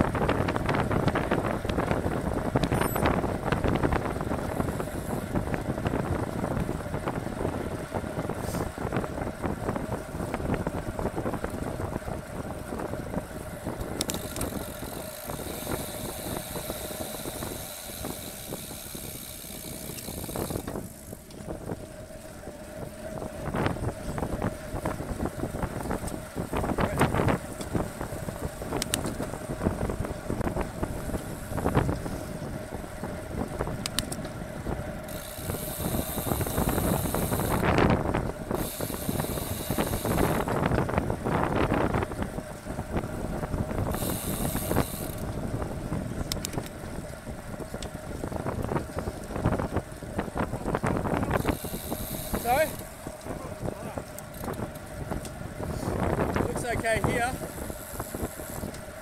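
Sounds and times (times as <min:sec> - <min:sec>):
bicycle tyre and drivetrain noise: 0:00.0 - 0:59.0
wind on microphone: 0:00.0 - 0:59.0.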